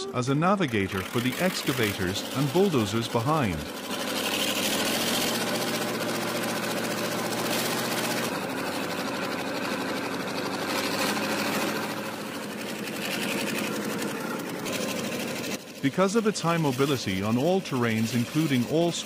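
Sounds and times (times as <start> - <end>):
tracked vehicle engine under load: 0.0 - 19.0
fast mechanical clatter: 0.3 - 19.0.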